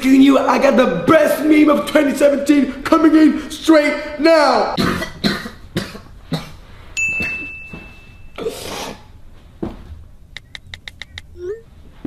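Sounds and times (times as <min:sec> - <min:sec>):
steady high beep: 0:07.0 - 0:08.4
sharp clicks: 0:10.3 - 0:11.3.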